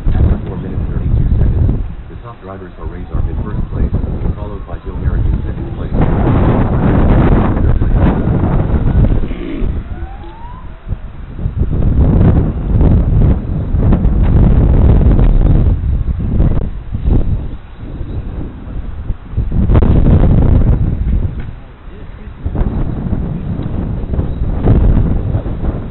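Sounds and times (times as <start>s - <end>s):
wind buffeting microphone: 0.0s - 25.9s
rising electric motor whine: 8.8s - 11.4s.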